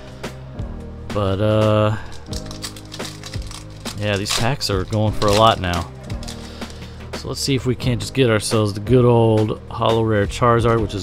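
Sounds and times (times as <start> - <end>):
background music: 0.0 - 11.0
foil wrapper crinkling and tearing: 2.0 - 7.0.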